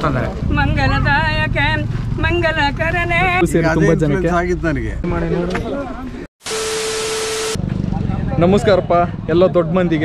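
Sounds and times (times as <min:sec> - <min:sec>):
steady low rumble: 0:00.0 - 0:03.7.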